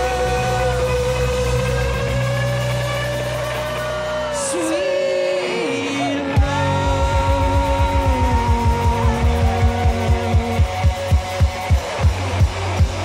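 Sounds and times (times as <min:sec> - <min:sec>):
person singing: 0:00.0 - 0:12.0
bass guitar: 0:00.0 - 0:13.0
rock band sustained chord: 0:00.0 - 0:13.0.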